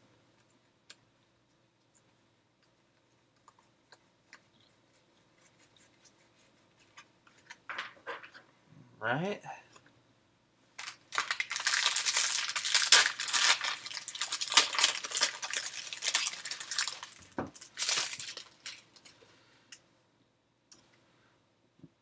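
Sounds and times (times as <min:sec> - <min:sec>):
foil wrapper crinkling and tearing: 0:10.8 - 0:19.1.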